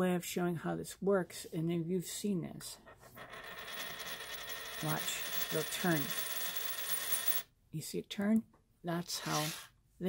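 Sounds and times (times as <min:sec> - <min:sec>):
coin spinning on countertop: 0:02.8 - 0:07.5, 0:09.0 - 0:09.7.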